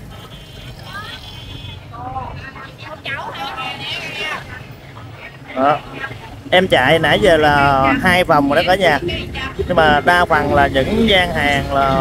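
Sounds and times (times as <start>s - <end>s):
distant voices talking: 0.0s - 12.0s.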